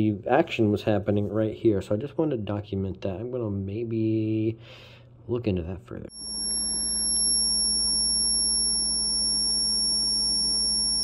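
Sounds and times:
high-pitched electrical whine: 6.1 - 11.0
low electrical buzz: 6.1 - 11.0.

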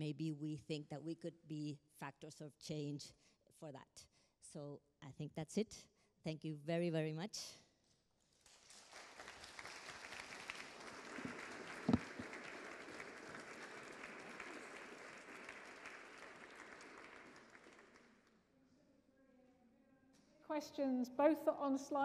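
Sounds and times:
audience applauding: 8.5 - 18.3.

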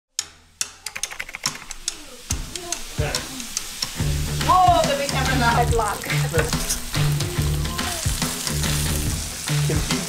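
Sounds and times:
sharp clicks and ticks: 0.2 - 5.4.

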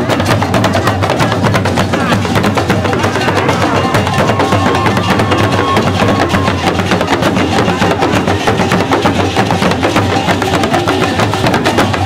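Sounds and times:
talking drums and barrel drums: 0.0 - 12.0.

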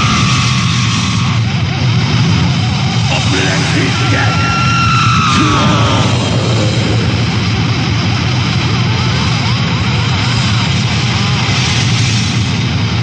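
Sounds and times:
distorted guitar bass and cymbals: 0.0 - 13.0.

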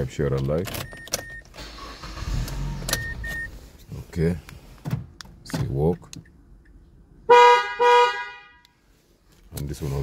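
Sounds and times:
car horn honking: 7.2 - 8.8.

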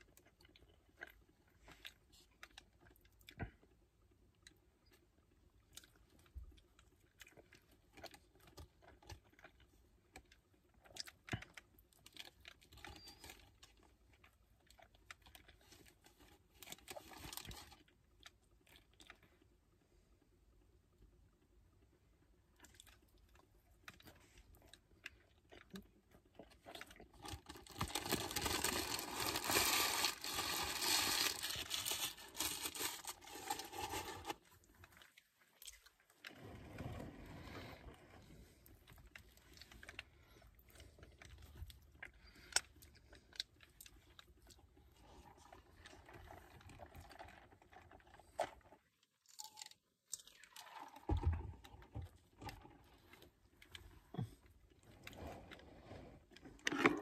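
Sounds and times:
person chewing and crunching food: 0.0 - 19.6, 22.2 - 36.3, 38.3 - 57.0.

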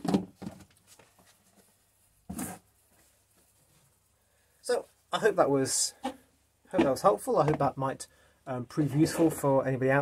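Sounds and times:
tub handling noise: 0.0 - 4.0, 5.9 - 7.8.

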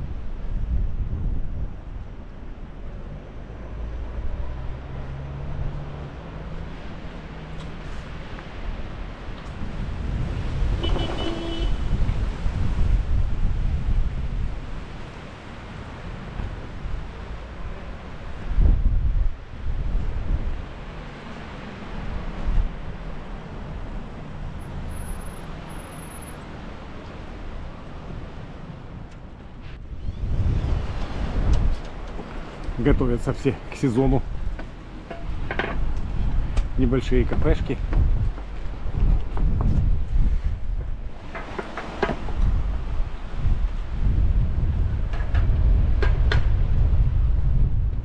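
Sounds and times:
gusty wind buffeting microphone: 0.0 - 25.7, 26.5 - 48.0.

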